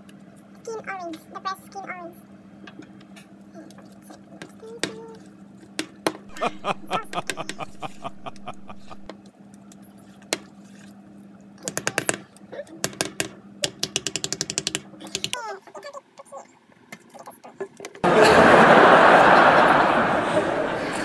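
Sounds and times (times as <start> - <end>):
steady low hum: 6.3 - 9.1.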